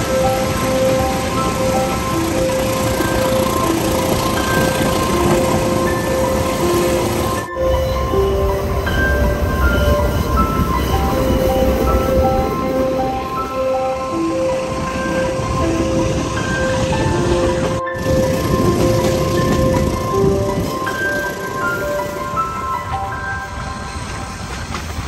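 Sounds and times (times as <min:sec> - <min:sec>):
gentle piano music: 0:00.0 - 0:25.0
train running on rails: 0:00.0 - 0:25.0.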